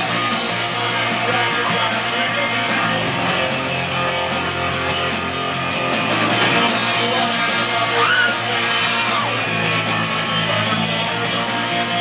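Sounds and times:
drum kit beat: 0.0 - 12.0
electric guitar: 0.0 - 12.0.

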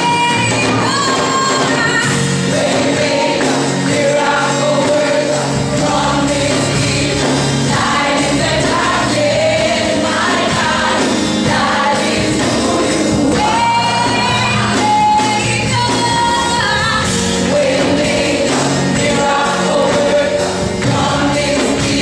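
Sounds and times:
choir singing gospel song: 0.0 - 22.0
musical accompaniment: 0.0 - 22.0.

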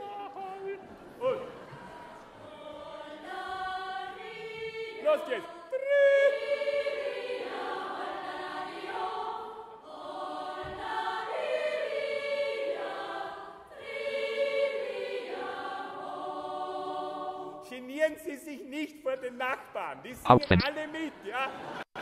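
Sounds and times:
choir singing sustained chords: 1.0 - 17.8.

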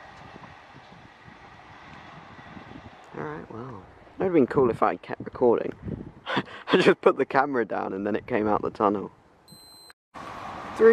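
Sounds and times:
distant train low rumble: 0.0 - 4.2.

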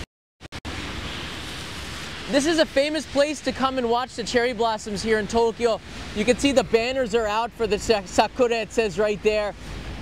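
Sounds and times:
rain hiss: 0.6 - 10.0
traffic on wet street: 0.6 - 10.0.

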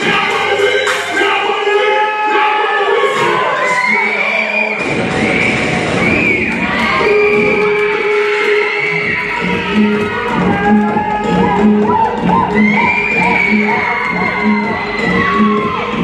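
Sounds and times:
heavy bass: 0.0 - 3.5, 4.8 - 16.0
hip-hop dance music: 0.0 - 16.0.

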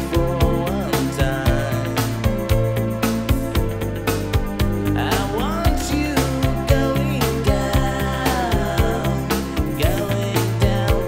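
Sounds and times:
dance track with steady kick beat: 0.0 - 11.0.

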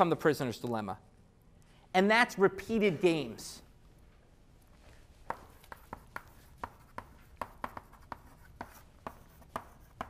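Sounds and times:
chalk writing on a blackboard: 5.3 - 10.0.

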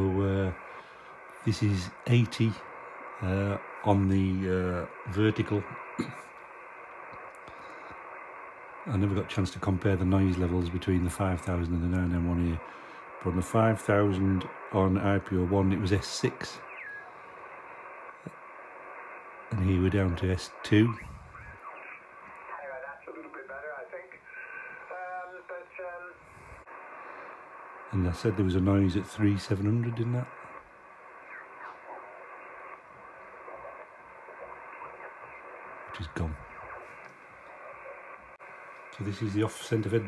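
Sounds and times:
radio band noise hiss: 0.0 - 40.0.

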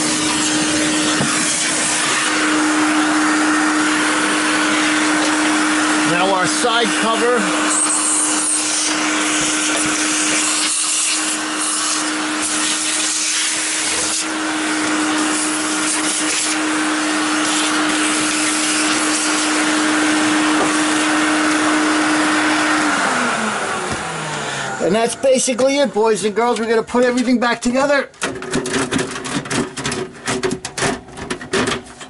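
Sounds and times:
vacuum cleaner running: 0.0 - 30.5.

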